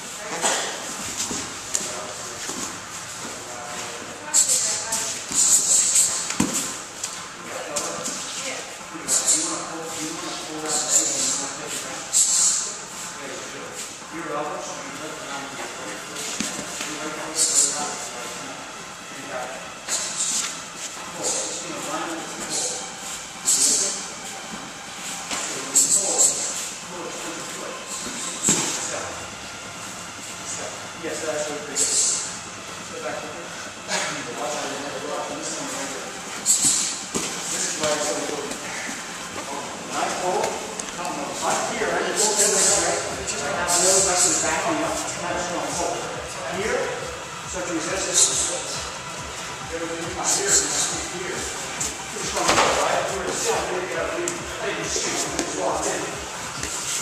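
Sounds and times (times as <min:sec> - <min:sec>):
indistinct voices in echoing room: 0:00.0 - 0:57.0
short hissing bursts: 0:12.0 - 0:12.8.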